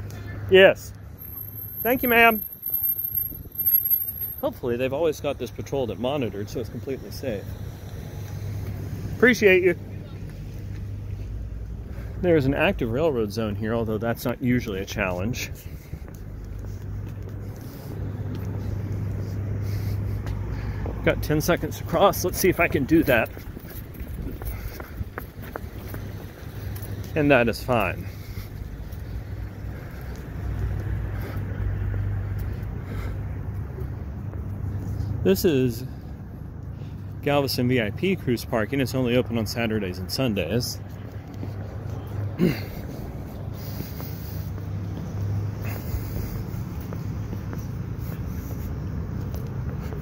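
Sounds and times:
street traffic: 0.0s - 50.0s.

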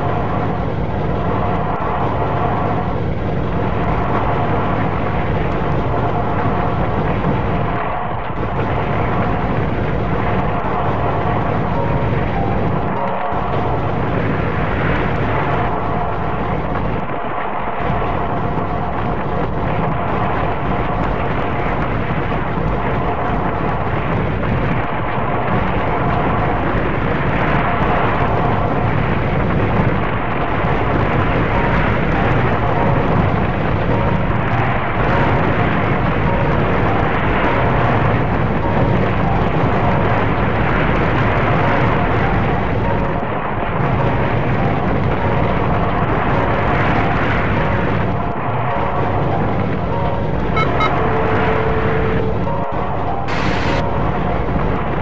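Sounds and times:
droning noise wall: 0.0s - 55.0s
low rumble: 0.0s - 55.0s
held tones: 50.0s - 54.0s.

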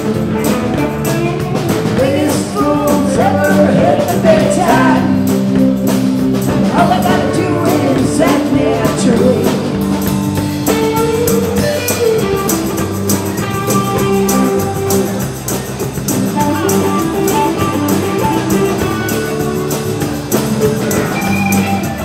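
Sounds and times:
live rock band playing: 0.0s - 22.0s
lead singer singing: 1.8s - 5.7s, 6.5s - 9.9s.

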